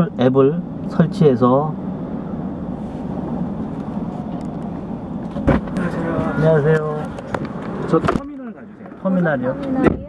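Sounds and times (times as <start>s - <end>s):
car engine running: 0.0s - 10.0s
traffic outside: 0.0s - 10.0s.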